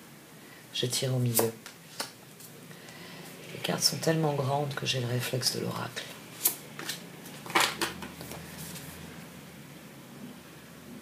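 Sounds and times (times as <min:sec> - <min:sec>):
cards sliding and snapping: 0:06.4 - 0:08.8.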